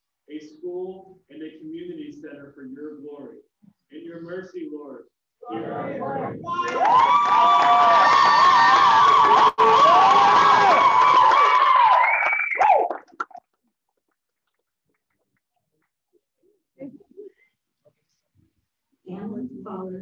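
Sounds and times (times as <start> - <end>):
crowd cheering: 5.5 - 13.4
high-pitched wavering calls and whoops: 11.3 - 13.0.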